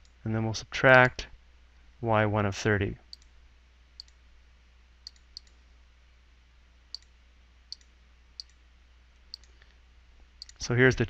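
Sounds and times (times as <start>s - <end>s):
computer mouse clicking: 9.3s - 9.6s.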